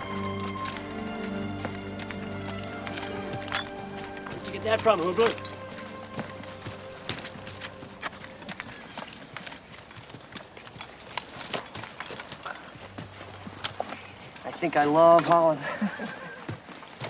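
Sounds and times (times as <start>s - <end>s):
footsteps: 0.0s - 17.0s.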